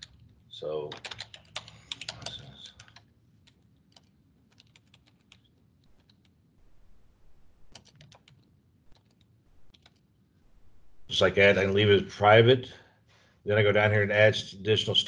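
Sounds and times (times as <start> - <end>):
typing on computer keyboard: 0.9 - 6.4, 7.5 - 10.0.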